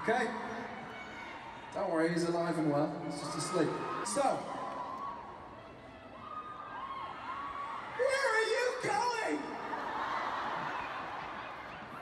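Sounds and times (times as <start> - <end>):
arena crowd cheering and screaming: 0.0 - 12.0.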